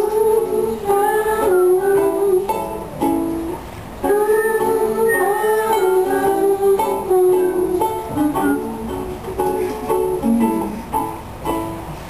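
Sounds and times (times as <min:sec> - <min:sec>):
ukulele strummed chords: 0:00.0 - 0:12.0.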